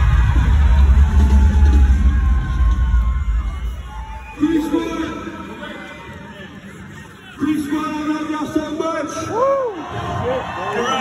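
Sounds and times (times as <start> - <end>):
loud concert music with heavy bass: 0.0 - 5.7.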